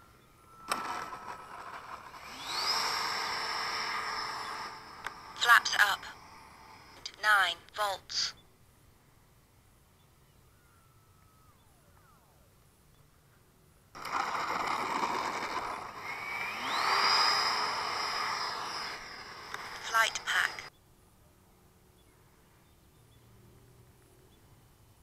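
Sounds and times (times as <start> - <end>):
model jet fan rushing and whining: 0.0 - 7.1, 13.9 - 20.7
person calling out: 7.1 - 8.3.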